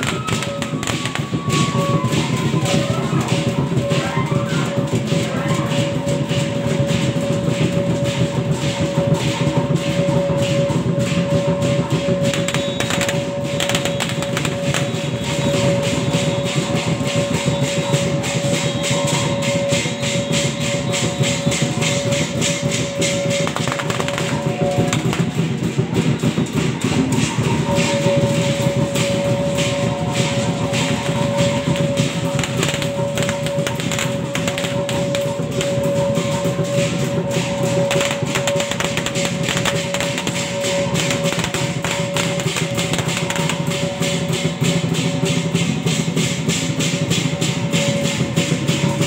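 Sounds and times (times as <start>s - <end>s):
fast dense percussion: 0.0s - 49.0s.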